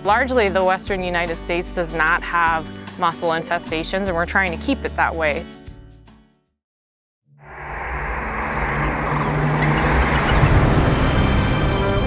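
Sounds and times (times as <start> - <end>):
rushing whoosh with low rumble: 7.4 - 12.0.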